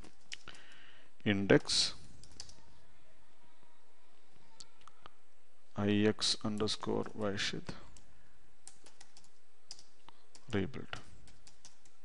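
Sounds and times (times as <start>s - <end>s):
computer keyboard keystrokes: 2.2s - 2.6s, 8.0s - 12.0s.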